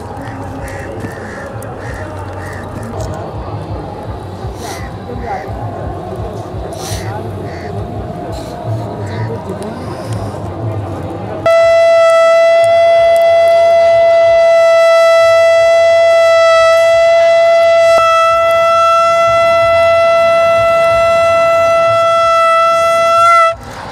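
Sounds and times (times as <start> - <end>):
long horn note: 11.4 - 23.6.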